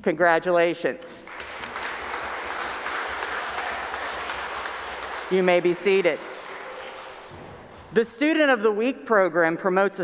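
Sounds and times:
children applauding: 0:01.2 - 0:08.0.

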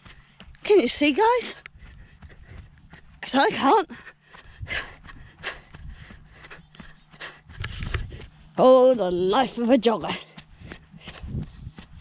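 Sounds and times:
jogger breathing: 0:00.0 - 0:12.0.

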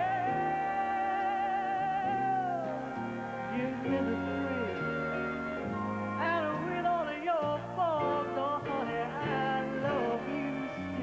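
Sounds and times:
instrumental ballad accompaniment: 0:00.0 - 0:11.0.

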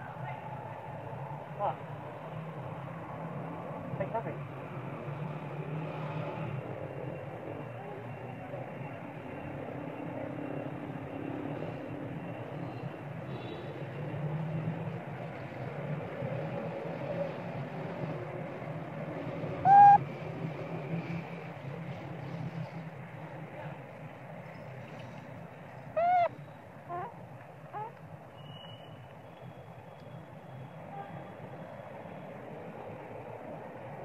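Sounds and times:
steady background noise: 0:00.0 - 0:34.0
rising and falling calls: 0:19.6 - 0:20.0, 0:26.0 - 0:27.1.

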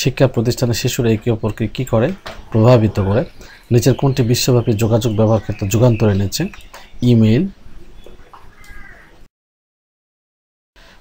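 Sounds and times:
low background noise: 0:00.0 - 0:09.3.

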